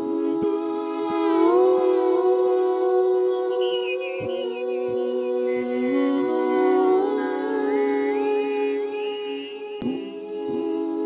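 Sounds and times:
voices humming in harmony: 0:00.0 - 0:11.0.

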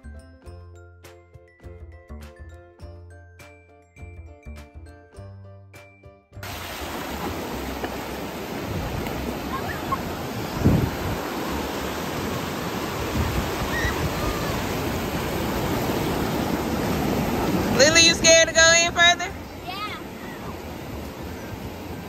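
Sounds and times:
ocean surf breaking: 0:06.4 - 0:22.0
child's voice: 0:19.4 - 0:20.6.

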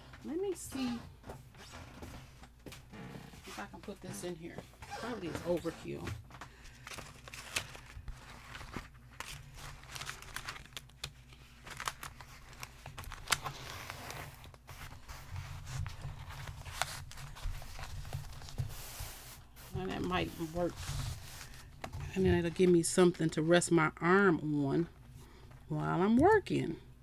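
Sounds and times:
plastic film crinkling: 0:06.5 - 0:21.8.

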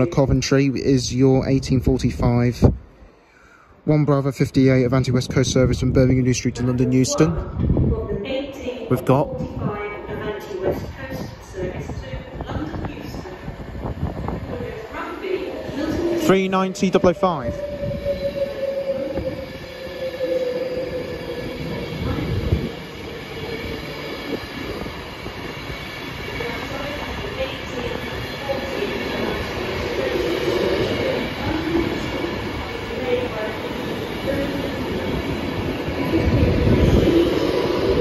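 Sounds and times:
train wheels rumbling on rail: 0:07.4 - 0:38.0
higher tones: 0:14.3 - 0:26.7
train whine falling in pitch: 0:14.7 - 0:25.0.

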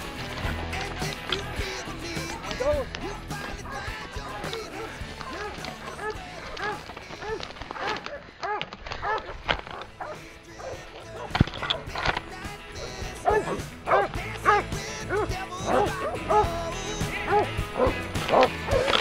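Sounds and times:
background music: 0:00.0 - 0:19.0
dog barking: 0:04.7 - 0:11.3, 0:12.8 - 0:16.6, 0:17.2 - 0:19.0.

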